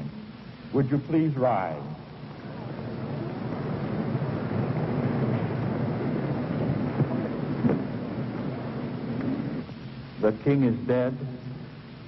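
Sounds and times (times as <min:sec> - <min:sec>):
audience shuffling and rustling: 0:01.5 - 0:12.0.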